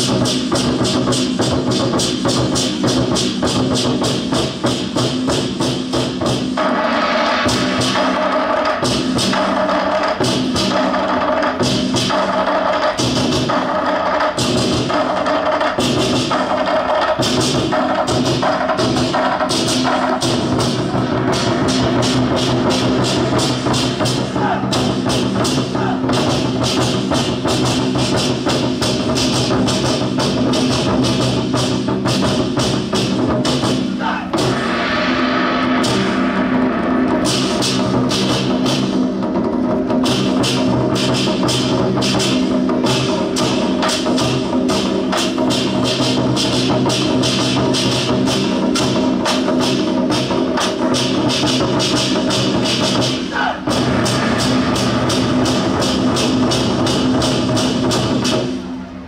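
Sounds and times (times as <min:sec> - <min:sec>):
war drums beaten with sticks: 0:00.0 - 0:58.9.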